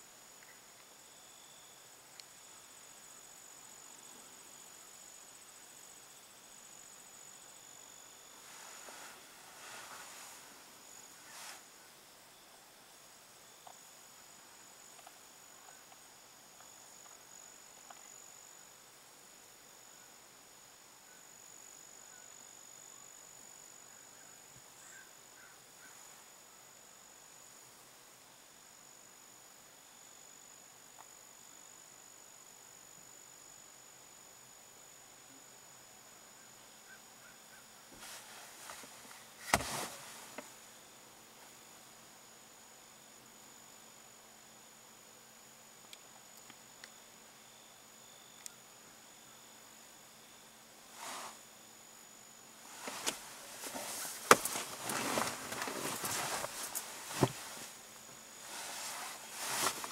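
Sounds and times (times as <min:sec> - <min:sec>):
high-pitched insect chorus: 0:00.0 - 0:59.9
short rustle: 0:08.4 - 0:11.7, 0:37.9 - 0:40.5, 0:50.9 - 0:51.4, 0:52.6 - 0:57.8, 0:58.4 - 0:59.9.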